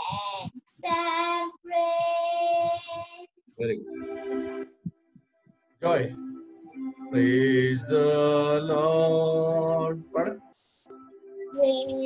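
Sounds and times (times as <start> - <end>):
soft low thumps: 0.0 - 3.9.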